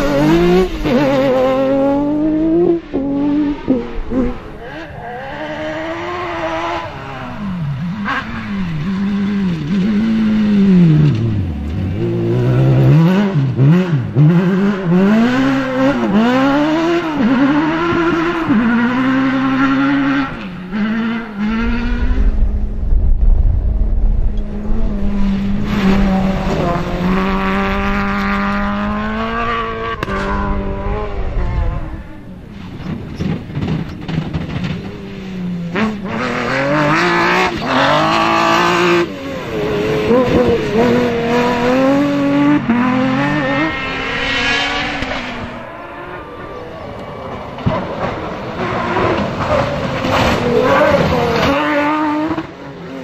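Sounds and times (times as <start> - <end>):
rally car engines revving: 0.0 - 53.0.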